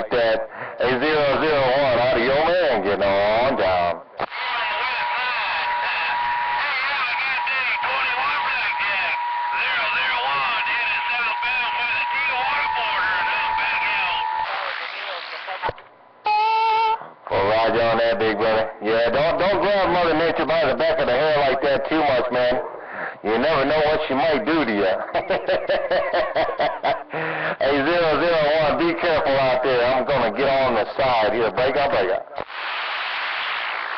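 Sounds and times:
man speaking on radio: 0.0 - 15.8, 17.3 - 25.6, 27.4 - 32.5
garbled radio voices: 0.0 - 33.9
radio heterodyne whistle: 4.2 - 17.1, 32.4 - 33.9.

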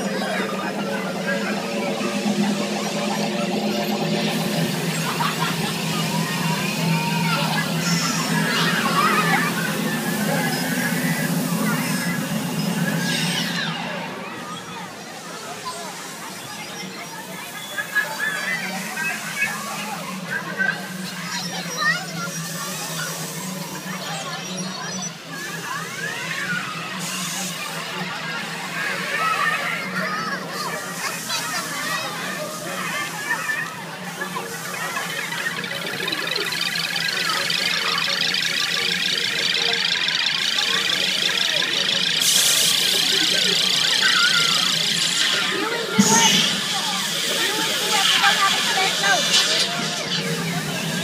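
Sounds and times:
steady low hum: 0.0 - 15.1
fountain spray rushing with hum: 0.0 - 16.6, 32.8 - 51.0
children's voices: 0.0 - 51.0.

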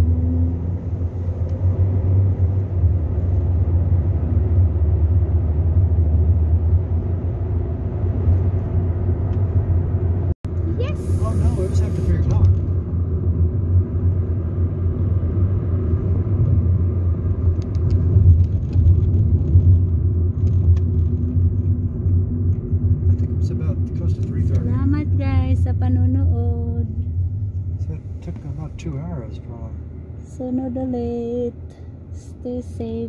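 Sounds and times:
car engine and tyre rumble: 0.0 - 33.0.

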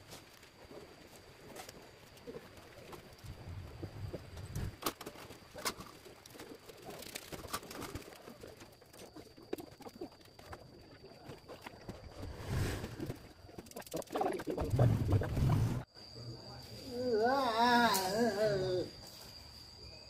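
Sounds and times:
bamboo sticks and string rustling: 0.0 - 15.9.

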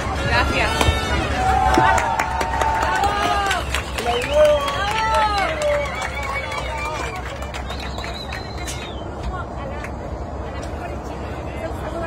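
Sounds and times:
passengers' voices: 0.0 - 12.0.

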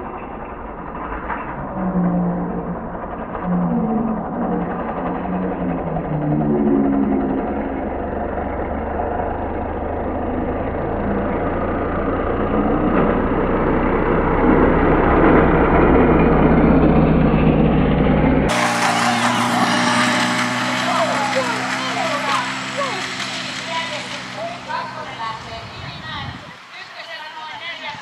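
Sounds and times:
low motor drone: 0.0 - 26.8
rush of noise: 13.7 - 28.0.

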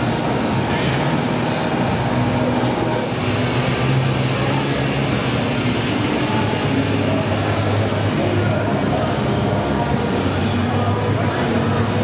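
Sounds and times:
dense background music: 0.0 - 12.0.

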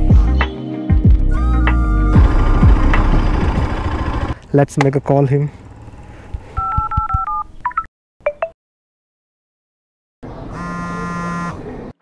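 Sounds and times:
telephone keypad dialing tones: 6.6 - 7.9.

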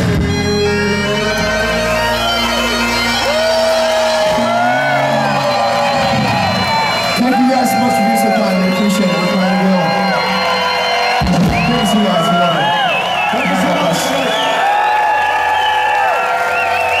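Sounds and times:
audience cheering and whooping: 1.2 - 17.0.

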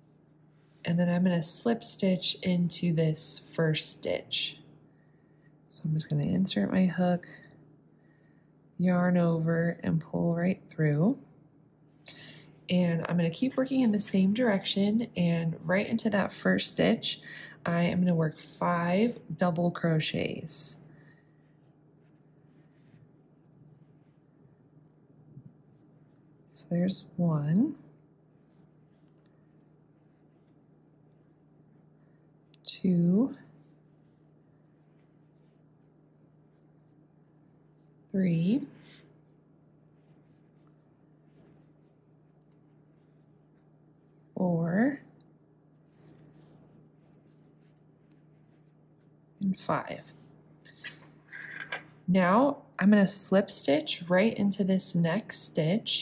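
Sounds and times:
low steady hum: 0.0 - 56.0
crochet hook scratching yarn: 21.6 - 24.4, 25.5 - 27.4, 28.0 - 31.6, 32.5 - 37.1, 37.7 - 44.9, 45.8 - 51.8.

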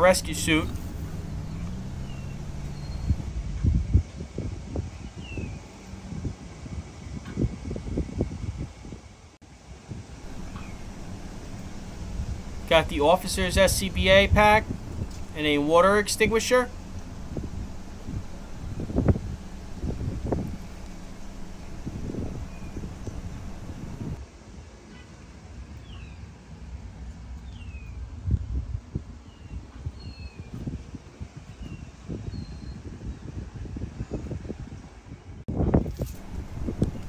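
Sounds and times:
low steady hum: 0.0 - 3.4, 10.2 - 24.2, 36.1 - 37.0
wind rumbling on microphone: 0.0 - 24.2, 27.4 - 37.0
faint bird chirps: 0.8 - 3.2, 10.3 - 12.7, 20.6 - 24.1.

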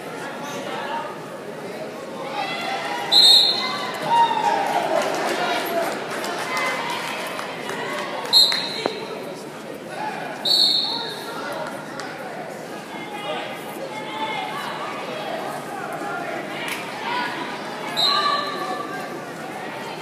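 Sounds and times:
referee's whistle blasts: 3.1 - 3.8, 8.3 - 9.0, 10.4 - 11.2.

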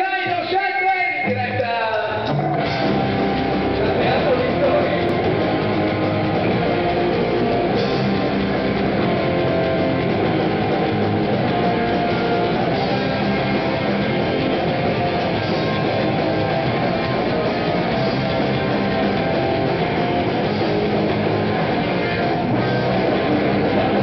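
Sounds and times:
rock band playing live: 0.0 - 24.0.

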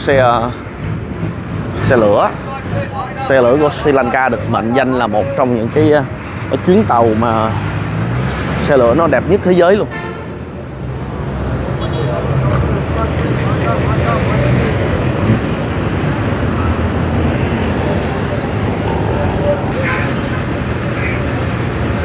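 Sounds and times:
vehicle engines humming: 0.0 - 22.0
voices of passers-by: 0.0 - 22.0.

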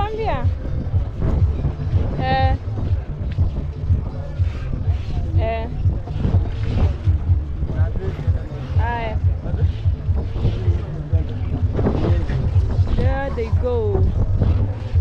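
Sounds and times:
voices: 0.0 - 15.0
wind buffeting microphone: 0.0 - 15.0.

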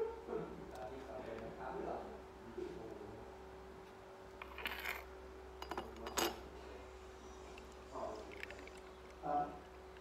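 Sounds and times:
ceramic teacup clinks: 5.6 - 6.4.

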